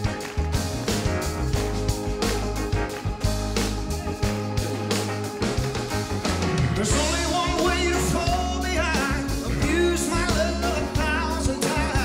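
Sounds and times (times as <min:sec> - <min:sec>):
electric guitar: 0:00.0 - 0:12.0
rock band playing: 0:00.0 - 0:12.0
man singing: 0:06.7 - 0:12.0.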